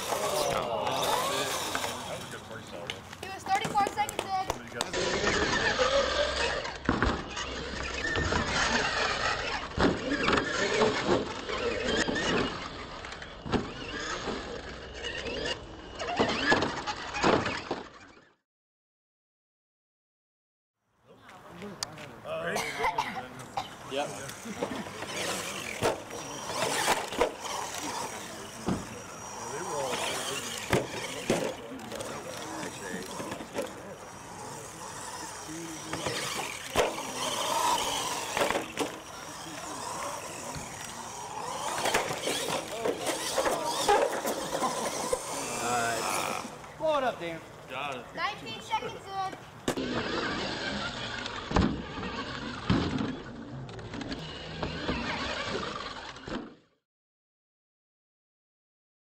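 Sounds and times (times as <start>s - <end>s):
spectators chatting: 0.0s - 17.2s, 21.1s - 56.2s
toy truck motor driving: 0.0s - 18.4s, 23.8s - 56.8s.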